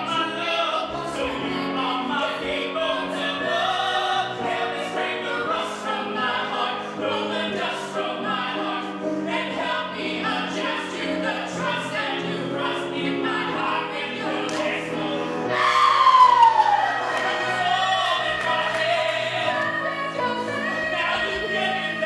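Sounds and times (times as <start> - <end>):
man and woman singing duet: 0.0 - 22.0
piano accompaniment: 0.0 - 22.0.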